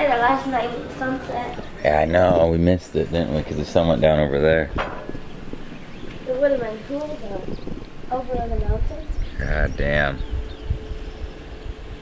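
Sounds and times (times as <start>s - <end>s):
faint steady hum: 0.0s - 12.0s
wind buffeting microphone: 0.0s - 12.0s.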